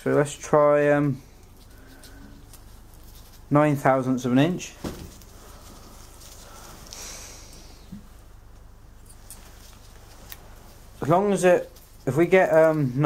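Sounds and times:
rustling: 0:00.0 - 0:13.0.

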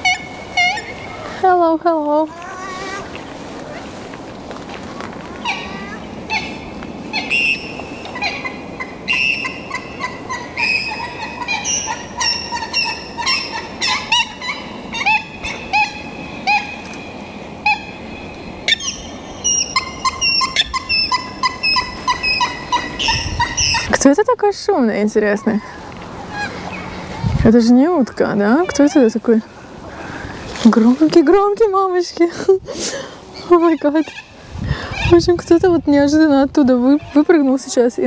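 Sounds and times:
waterbirds calling: 0:00.0 - 0:38.0.

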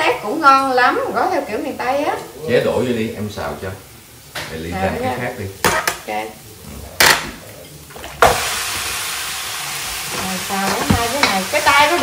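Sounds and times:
cookware clank: 0:10.1 - 0:11.5.

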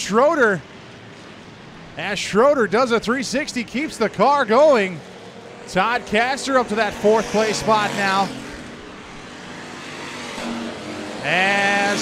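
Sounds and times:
race car engines in a pack: 0:00.0 - 0:12.0.

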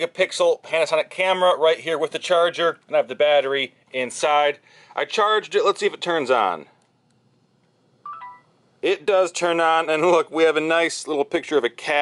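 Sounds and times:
camera electronic beep: 0:08.0 - 0:08.5.

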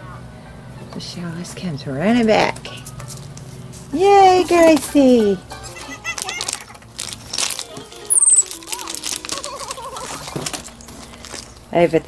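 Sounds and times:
background music: 0:03.9 - 0:10.9
plastic packaging crinkling: 0:05.8 - 0:11.7
high falling chirp: 0:07.3 - 0:08.9.

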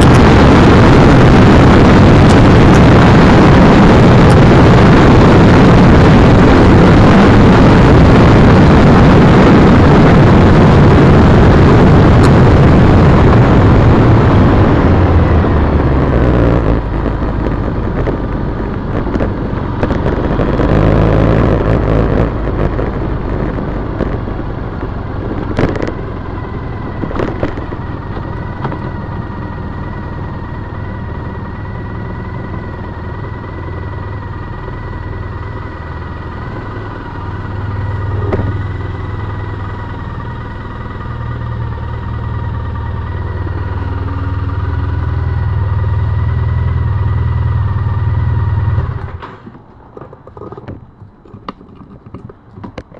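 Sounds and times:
wind rush: 0:00.0 - 0:49.9.

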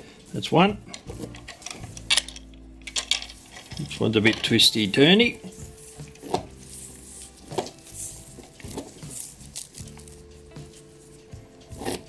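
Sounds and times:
metal chains clinking and rattling: 0:00.0 - 0:12.0
soft background music: 0:00.0 - 0:12.0.

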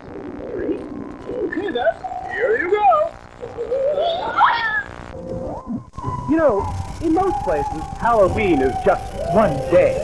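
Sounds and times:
cartoonish voices laughing: 0:00.6 - 0:04.9.

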